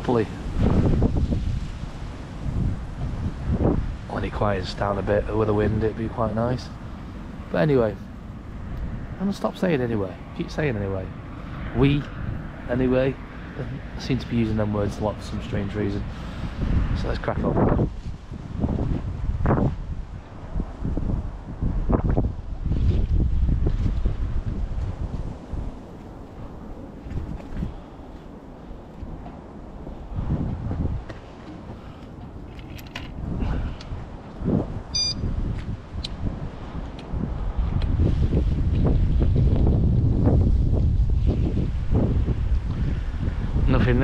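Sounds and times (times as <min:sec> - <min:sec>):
wind buffeting microphone: 0:00.0 - 0:44.0
high-pitched chirp: 0:34.9 - 0:35.2.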